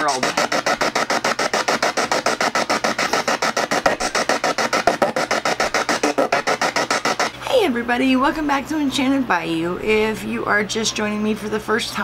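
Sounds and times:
pulsing radio static: 0.0 - 7.4.

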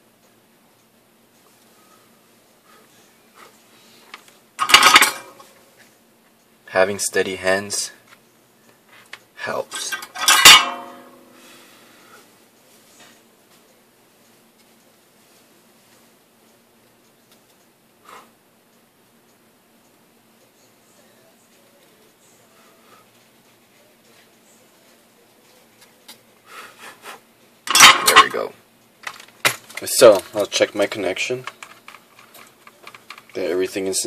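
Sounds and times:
metallic clank: 4.6 - 5.5, 9.7 - 11.3, 27.7 - 28.4.

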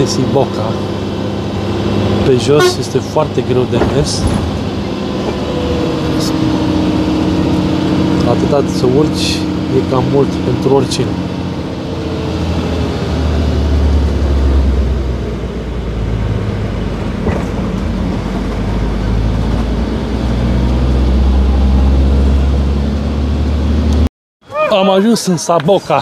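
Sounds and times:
bus diesel engine droning: 0.0 - 26.0.

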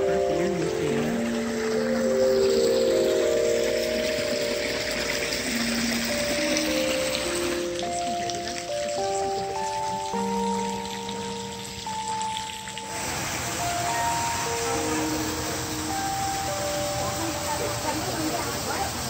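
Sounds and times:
slow instrumental music: 0.0 - 19.0
water hissing: 0.0 - 19.0.

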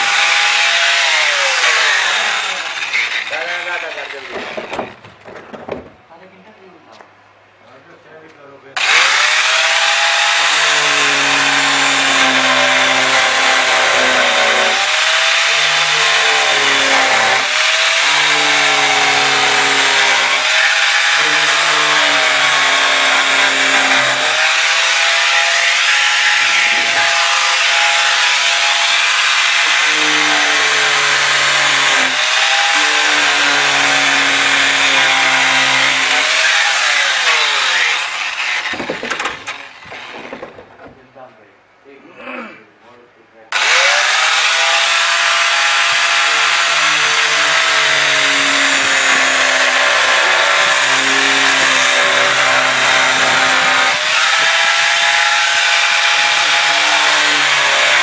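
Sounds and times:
angle grinder cutting plastic: 0.0 - 5.0, 8.8 - 40.9, 43.5 - 58.0.

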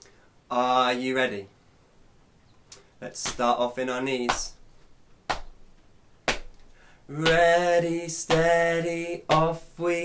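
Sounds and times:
hand slaps on knees: 5.3 - 5.6, 6.2 - 7.5, 8.3 - 8.5, 9.3 - 9.5.

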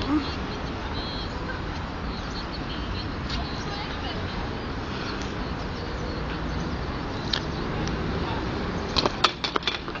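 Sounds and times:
skateboard clacking on ground: 9.0 - 10.0.

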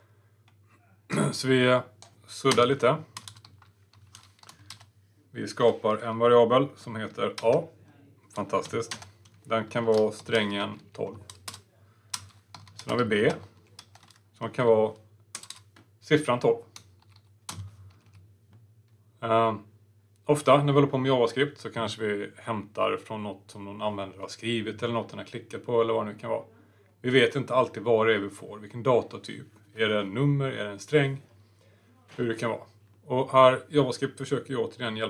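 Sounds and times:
computer keyboard clicks: 2.0 - 4.9, 8.6 - 13.0, 13.6 - 14.2, 15.3 - 15.8, 16.8 - 18.2.

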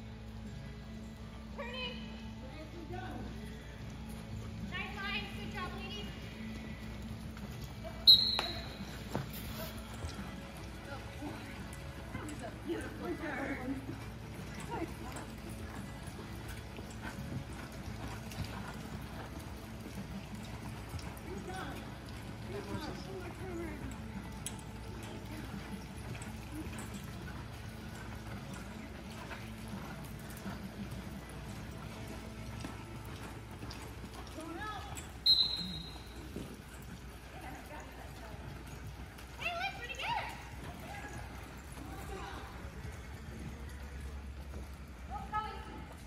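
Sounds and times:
horse hoofbeats on soft dirt: 0.0 - 46.0.

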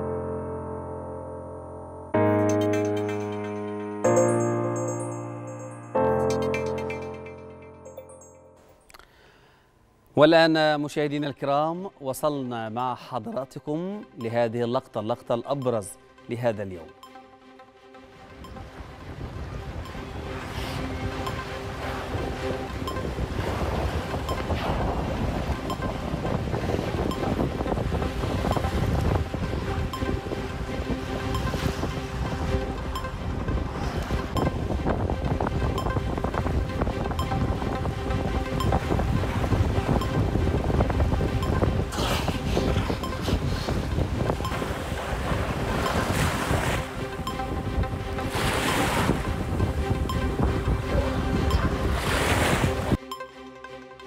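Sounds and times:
quiet music bed: 0.0 - 9.0
wind buffeting microphone: 18.5 - 53.0.

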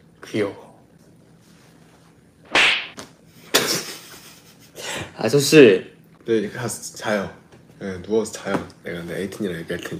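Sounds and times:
sudden loud swish: 2.5 - 3.0.

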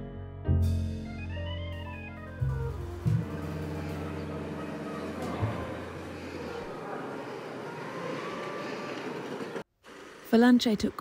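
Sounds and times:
traffic hum: 2.5 - 10.2.

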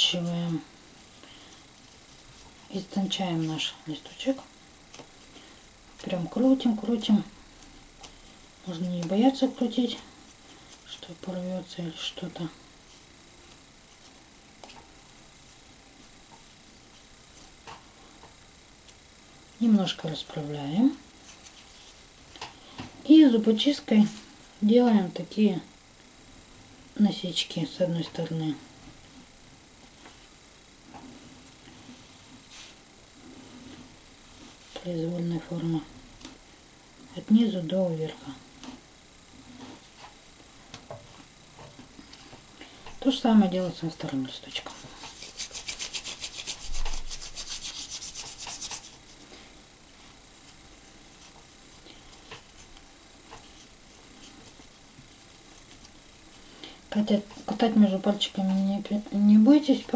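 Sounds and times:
steady low hiss: 0.0 - 59.9
toothpick scratching craft foam: 45.1 - 49.0.

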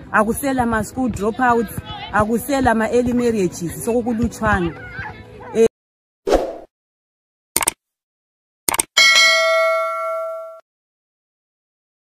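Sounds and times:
mouse double click: 7.6 - 7.8
bright bell ding: 9.0 - 10.6.

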